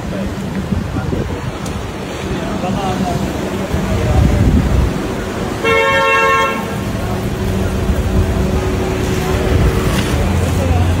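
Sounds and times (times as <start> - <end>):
street noise: 0.0 - 11.0
car horn toot: 5.6 - 6.8.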